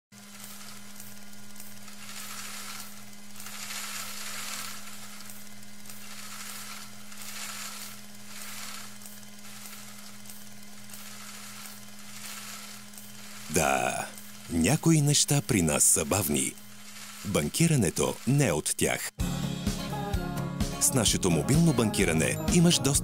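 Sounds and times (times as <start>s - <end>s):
steady hiss: 0.2s - 19.1s.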